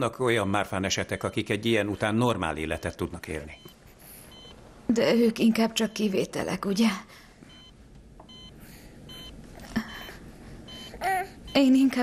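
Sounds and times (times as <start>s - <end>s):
patient monitor beeping: 0.0s - 12.0s.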